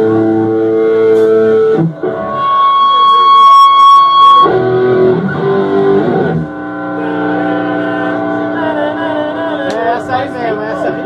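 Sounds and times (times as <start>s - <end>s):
electric guitar held notes: 0.0s - 11.0s.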